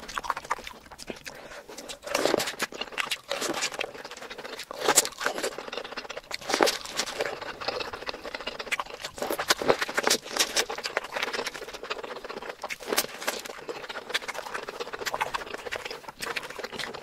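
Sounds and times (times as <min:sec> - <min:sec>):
person chewing food: 0:00.0 - 0:17.0.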